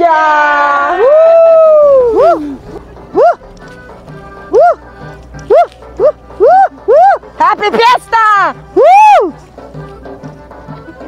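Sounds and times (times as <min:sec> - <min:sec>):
background music: 0:00.0 - 0:11.0
short yelps: 0:03.1 - 0:03.4.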